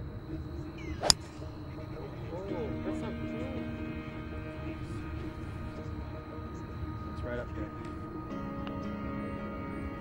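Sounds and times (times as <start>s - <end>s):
golf club striking ball: 1.0s - 1.5s.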